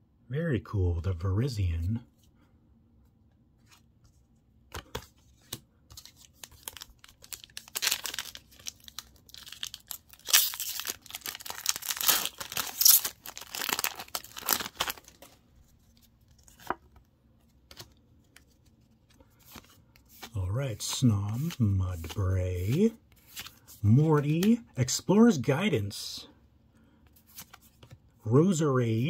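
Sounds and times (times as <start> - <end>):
foil wrapper tearing and crinkling: 6.4 - 15.2.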